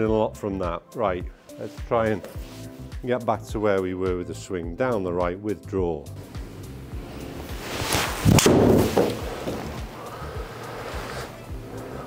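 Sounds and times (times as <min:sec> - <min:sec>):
background music: 0:00.0 - 0:12.0
golf club swish: 0:06.3 - 0:11.4
golf ball impact crack: 0:08.1 - 0:10.0.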